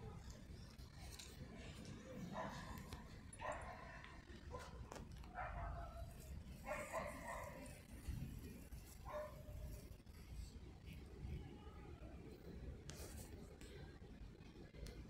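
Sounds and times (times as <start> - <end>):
faint dog barking: 2.0 - 10.0.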